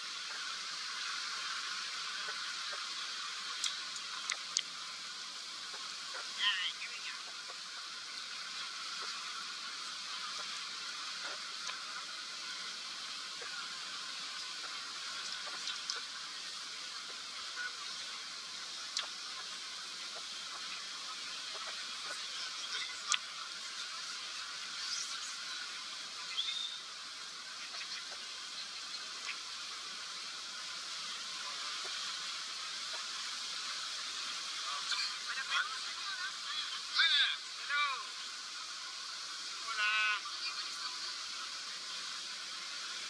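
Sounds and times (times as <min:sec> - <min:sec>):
river water rushing: 0:00.0 - 0:43.0
wind: 0:00.0 - 0:43.0
faint voices and shouts: 0:34.6 - 0:38.2.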